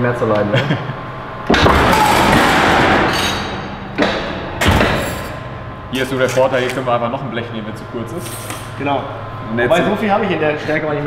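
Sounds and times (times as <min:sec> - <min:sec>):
machine thumps: 0:01.4 - 0:05.9
metal shear blade bang: 0:01.5 - 0:06.9.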